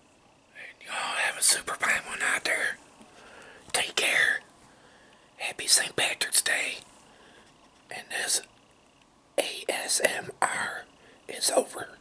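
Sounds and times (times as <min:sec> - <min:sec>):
man whispering: 0:00.5 - 0:02.8, 0:03.7 - 0:04.5, 0:05.4 - 0:06.9, 0:07.9 - 0:08.5, 0:09.4 - 0:12.0.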